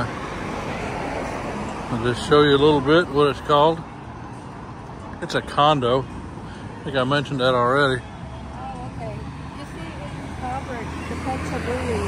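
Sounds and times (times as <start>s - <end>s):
city road traffic hum: 0.0s - 12.0s.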